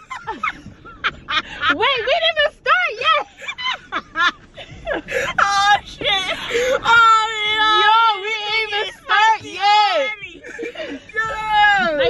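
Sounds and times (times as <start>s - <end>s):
laughter: 0.0s - 2.2s, 3.2s - 5.3s, 10.3s - 12.0s.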